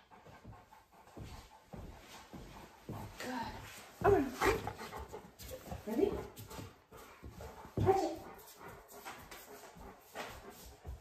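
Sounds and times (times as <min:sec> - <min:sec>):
dog moving on hard floor: 0:00.2 - 0:11.0.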